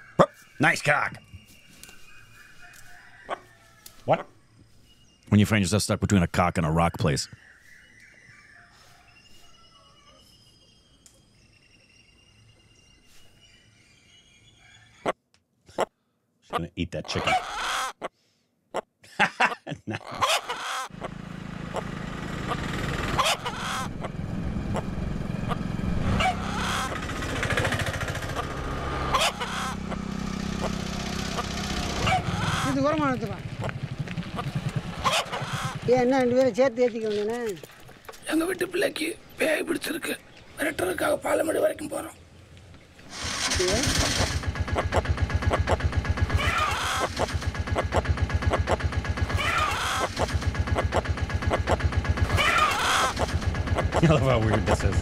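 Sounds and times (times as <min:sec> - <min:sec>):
chicken squawk: 0:02.6 - 0:04.4, 0:17.1 - 0:18.1, 0:20.0 - 0:21.1, 0:22.5 - 0:24.1, 0:25.5 - 0:27.2, 0:29.1 - 0:30.0, 0:30.6 - 0:32.8, 0:34.4 - 0:35.9, 0:44.2 - 0:54.0
motorcycle engine running: 0:20.9 - 0:36.8, 0:43.2 - 0:55.0.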